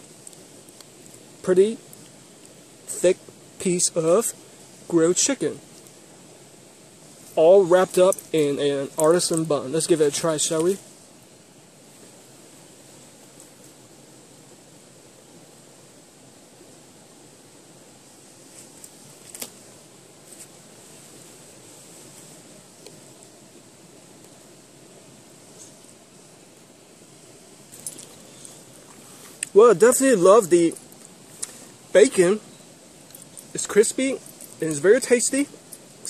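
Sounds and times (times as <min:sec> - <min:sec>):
dog collar tags jingling: 0:33.1 - 0:35.1.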